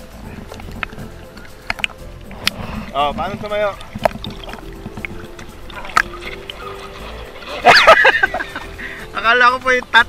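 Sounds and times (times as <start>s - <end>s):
loud water splash: 1.7s - 8.6s.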